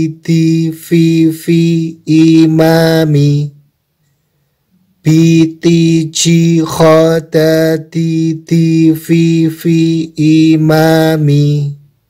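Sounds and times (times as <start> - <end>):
man chanting syllables: 0.0 - 3.7, 5.0 - 12.0.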